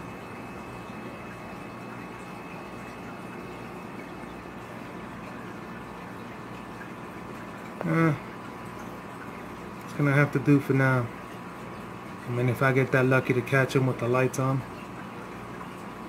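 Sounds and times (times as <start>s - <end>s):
aquarium filter water running: 0.0s - 16.0s
faint humming tones: 0.0s - 16.0s.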